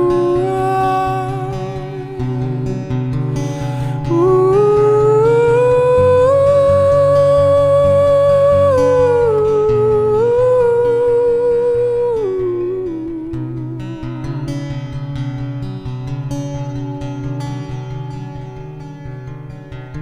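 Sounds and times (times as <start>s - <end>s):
man's wordless vocal melody: 0.0s - 3.0s, 3.8s - 14.6s
strummed acoustic guitar: 0.0s - 20.0s.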